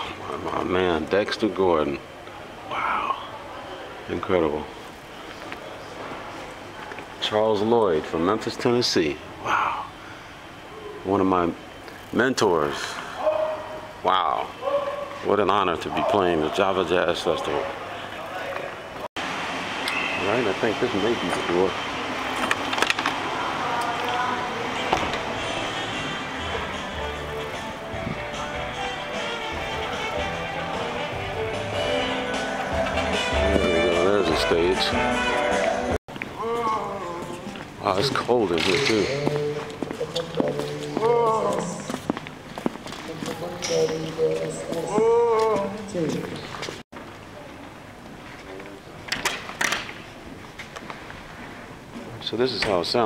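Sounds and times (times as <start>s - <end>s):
steady background noise: 0.0s - 53.0s
footsteps: 38.7s - 47.1s.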